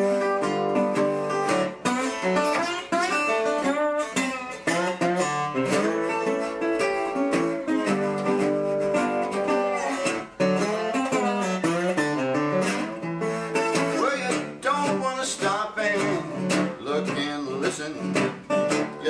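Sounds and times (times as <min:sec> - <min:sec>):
resonator guitar blues playing: 0:00.0 - 0:19.0.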